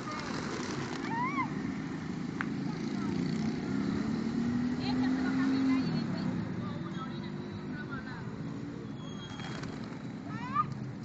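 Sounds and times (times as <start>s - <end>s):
motor vehicle passing: 0.0s - 10.9s
outdoor crowd chatter: 0.0s - 11.0s.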